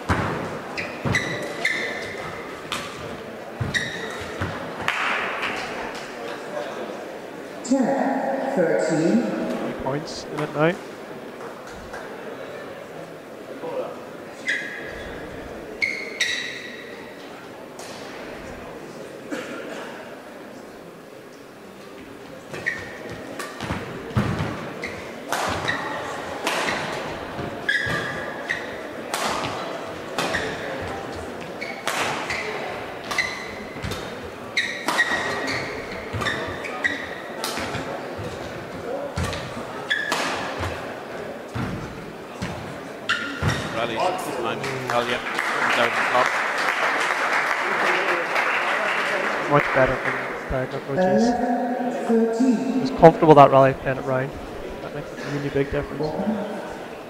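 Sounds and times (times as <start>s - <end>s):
shoes squeaking on court: 0.1s - 4.7s, 14.4s - 17.2s, 22.4s - 40.9s, 41.5s - 43.8s
crowd applause: 44.3s - 50.8s.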